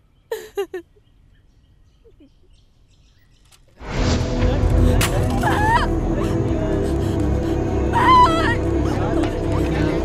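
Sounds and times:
faint bird chirping: 0:00.0 - 0:03.8
woman sobbing: 0:00.3 - 0:00.9, 0:04.8 - 0:10.0.

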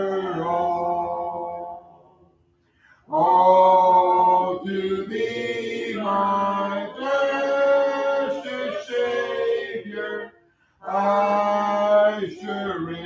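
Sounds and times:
congregation singing a hymn: 0:00.0 - 0:02.2, 0:03.1 - 0:13.0.

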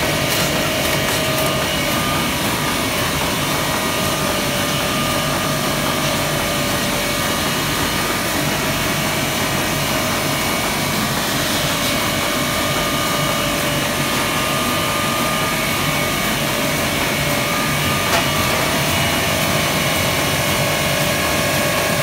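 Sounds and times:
printing press running: 0:00.0 - 0:22.0.

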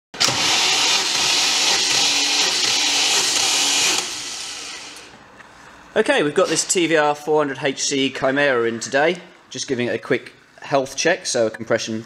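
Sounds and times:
starter motor whirring: 0:00.2 - 0:05.2.

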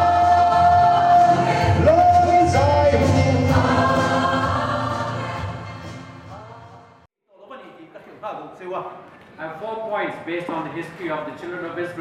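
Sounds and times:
mixed choir singing gospel: 0:00.0 - 0:06.3.

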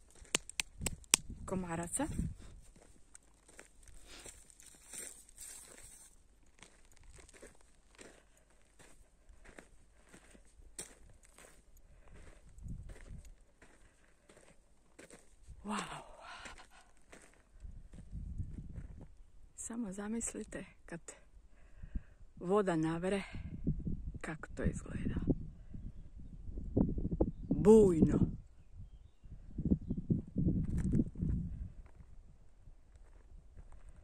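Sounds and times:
footsteps on dry clay and grit: 0:00.0 - 0:19.2, 0:32.9 - 0:34.0.

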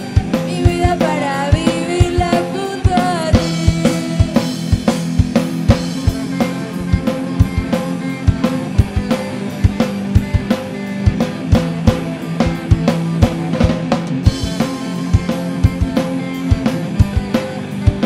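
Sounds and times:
drum kit beat: 0:00.0 - 0:18.0
electric guitar chords: 0:00.0 - 0:18.0.

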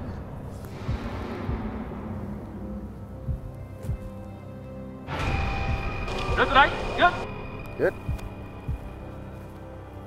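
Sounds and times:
background music of held tones: 0:00.0 - 0:10.0
low drum-like thumps: 0:00.7 - 0:04.2.

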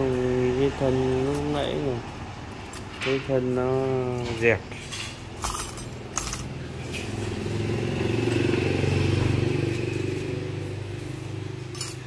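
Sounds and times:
metallic jewelry clinks: 0:04.9 - 0:06.7, 0:11.6 - 0:12.0
vehicle engine running: 0:05.4 - 0:12.0.

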